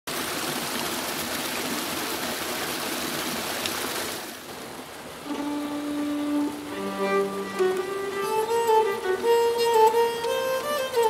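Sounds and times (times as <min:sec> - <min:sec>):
stream burbling over rocks: 0:00.1 - 0:11.0
bowed string note: 0:05.2 - 0:11.0.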